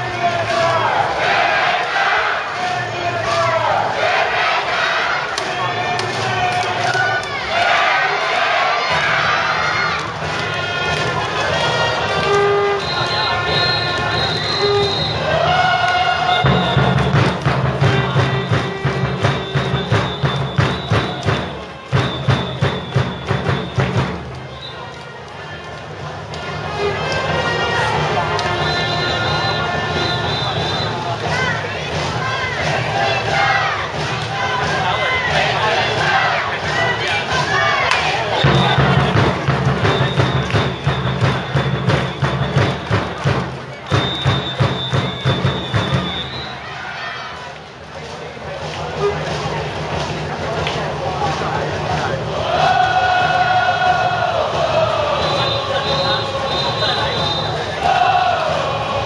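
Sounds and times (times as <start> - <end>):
drums beating in steady rhythm: 0.0 - 24.8, 25.9 - 46.8, 47.7 - 59.0
horn holding long notes: 11.6 - 16.9
high whistle-like tone: 12.4 - 15.4, 19.3 - 21.4, 22.0 - 23.9, 28.6 - 31.0, 43.8 - 46.7, 55.2 - 57.6.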